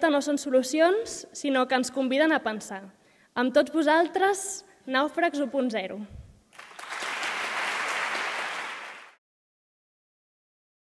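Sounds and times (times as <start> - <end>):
audience applauding: 6.5 - 9.2.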